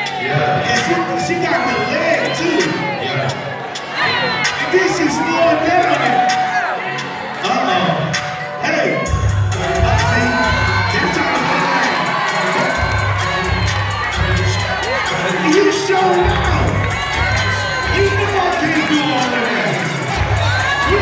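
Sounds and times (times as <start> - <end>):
audience cheering and shouting: 0.0 - 21.0
dance music with heavy bass: 9.0 - 21.0.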